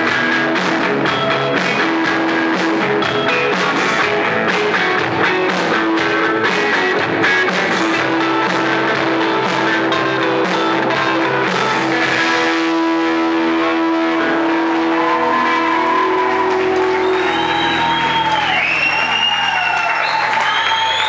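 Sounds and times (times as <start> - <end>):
rock band chord ringing: 0.0 - 19.0.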